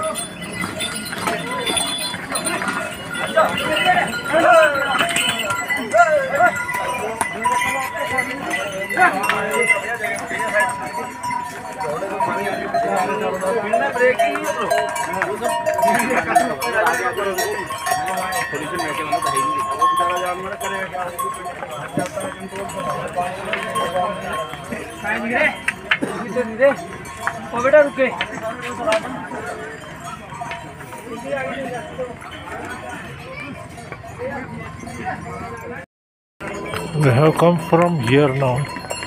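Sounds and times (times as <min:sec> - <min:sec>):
crowd talking: 0:00.0 - 0:39.0
pack animal bells ringing: 0:00.0 - 0:39.0.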